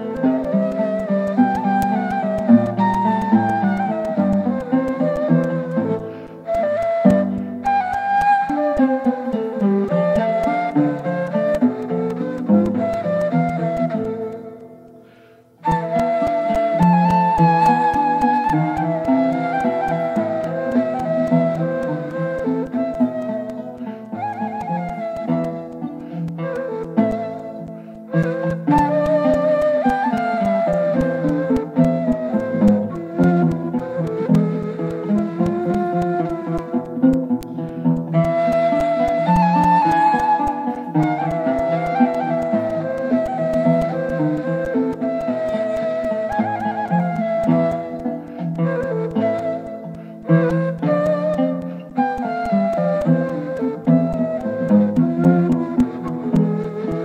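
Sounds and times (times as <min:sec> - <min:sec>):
plucked oud melody: 0:00.0 - 0:57.0.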